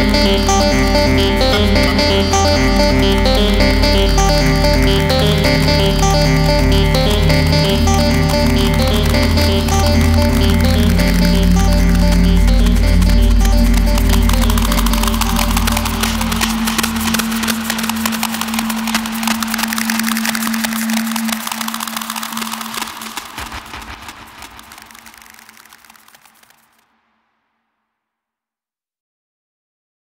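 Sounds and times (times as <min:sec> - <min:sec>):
held low tone: 0:00.0 - 0:19.8
deep bass and sustained chords: 0:00.0 - 0:21.0
fast clicking percussion: 0:00.0 - 0:26.8.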